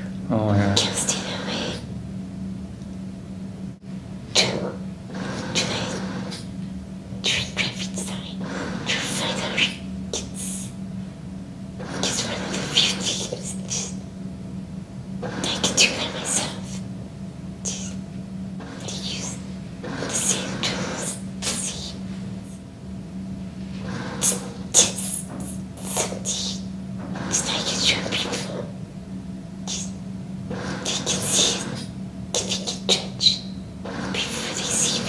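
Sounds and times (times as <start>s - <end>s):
steady low hum: 0.0s - 35.0s
man speaking: 0.2s - 0.8s.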